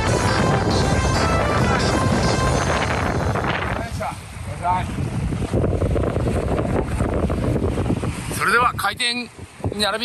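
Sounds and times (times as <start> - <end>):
wind buffeting microphone: 0.0 - 10.0
small waves lapping on shore: 2.6 - 10.0.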